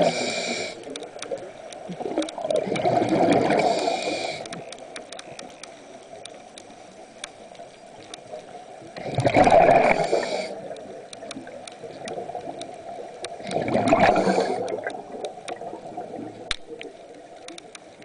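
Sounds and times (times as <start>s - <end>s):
diver breathing through regulator: 0.0s - 1.0s, 2.6s - 4.8s, 9.0s - 10.8s, 13.4s - 14.9s
faint clicks: 0.0s - 18.0s
gurgling exhaled bubbles: 1.9s - 4.5s, 9.0s - 16.9s.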